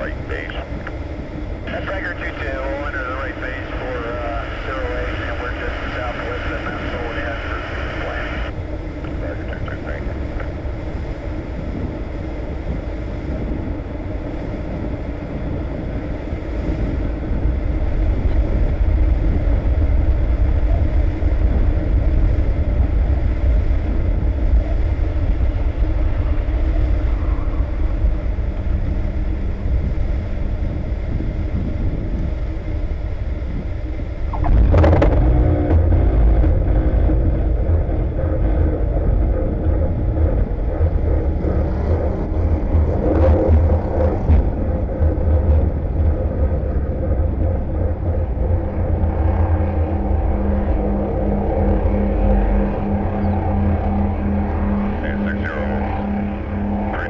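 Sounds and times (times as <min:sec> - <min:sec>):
aircraft rolling on runway: 0:00.0 - 0:57.0
low rumble of wind and airflow: 0:00.0 - 0:57.0.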